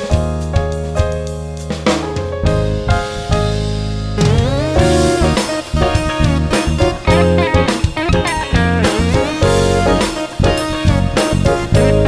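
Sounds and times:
bass guitar: 0.0s - 12.0s
drum kit: 0.0s - 12.0s
electric guitar lead with slides: 2.9s - 12.0s.

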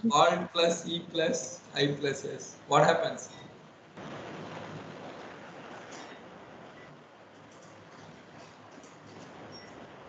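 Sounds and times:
microphone hiss with low rumble: 0.0s - 10.0s.

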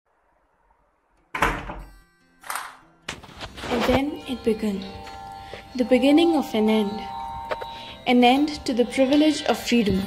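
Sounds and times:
sustained musical tones: 2.0s - 10.0s.

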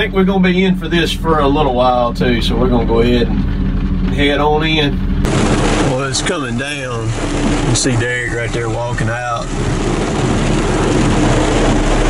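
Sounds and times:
truck engine and road noise: 0.0s - 12.0s
rain hissing on roof and glass: 5.3s - 12.0s.

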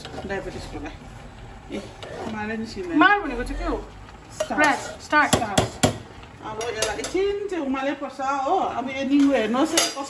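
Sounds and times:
spoon knocking against metal pot: 4.4s - 7.2s.

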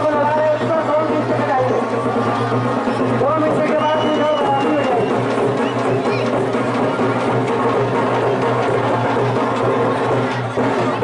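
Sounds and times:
live drum music: 0.0s - 11.0s.

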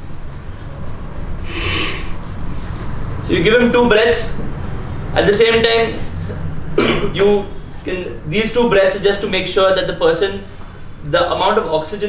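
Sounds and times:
steady low hum: 0.0s - 12.0s
rescue breath into manikin: 1.4s - 2.2s.

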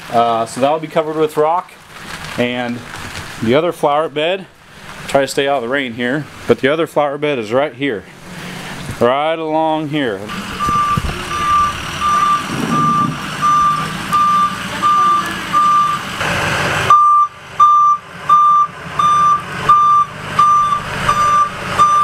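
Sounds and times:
truck engine rumbling: 0.0s - 22.0s
truck reversing alarm beeping: 10.3s - 22.0s.

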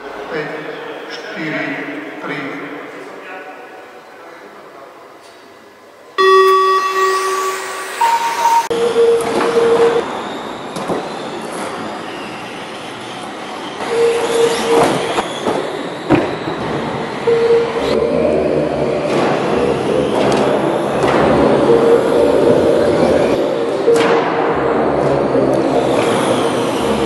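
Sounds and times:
steady tone: 6.2s - 10.2s, 17.2s - 27.0s.

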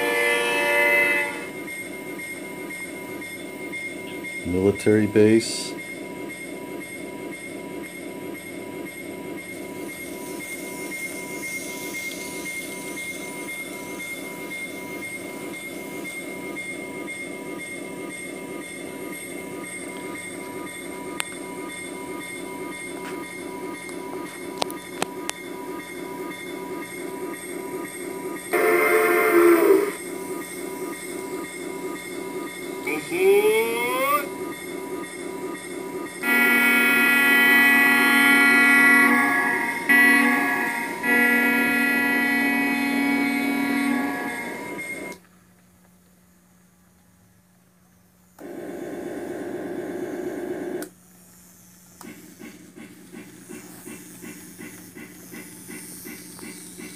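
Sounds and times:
locomotive horn: 0.0s - 1.6s, 28.5s - 30.0s, 36.2s - 45.2s
model locomotive running rumble: 0.0s - 1.6s, 4.1s - 45.2s, 48.4s - 56.9s.

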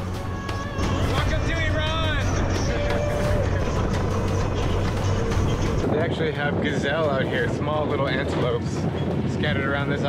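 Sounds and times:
motorised rickshaw humming: 0.0s - 5.8s
music: 0.0s - 10.0s.

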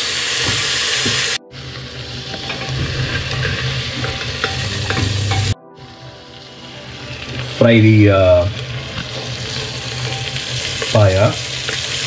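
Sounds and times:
meat sizzling in a pot: 0.0s - 5.6s, 6.3s - 12.0s
wooden spatula scraping a pot: 0.5s - 5.6s, 8.6s - 12.0s.

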